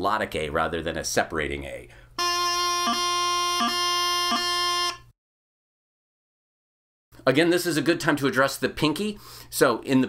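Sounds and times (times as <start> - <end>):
practice chanter steady note: 2.2 - 5.0.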